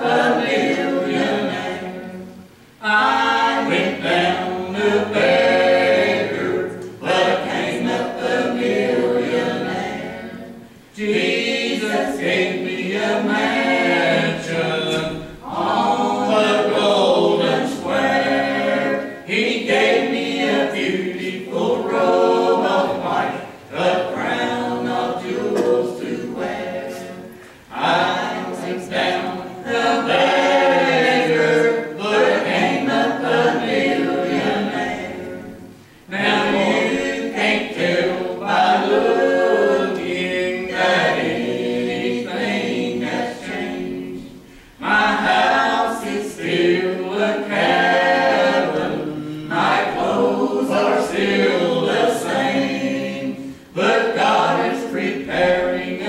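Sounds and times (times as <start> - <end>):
group singing gospel a cappella: 0.0 - 56.0.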